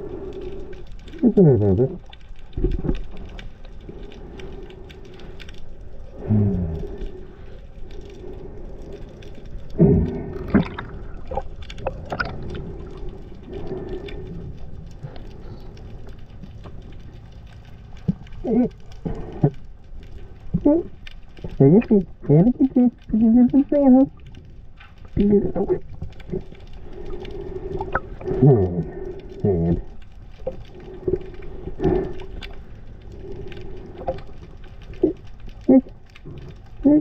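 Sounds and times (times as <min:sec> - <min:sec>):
small clicks and crackles: 0:00.0 - 0:37.0
underwater hum: 0:00.0 - 0:37.0
muffled vocal sounds: 0:01.1 - 0:02.0, 0:06.2 - 0:07.2, 0:18.4 - 0:19.6, 0:20.5 - 0:24.2, 0:25.1 - 0:26.6, 0:27.6 - 0:30.0, 0:35.0 - 0:37.0.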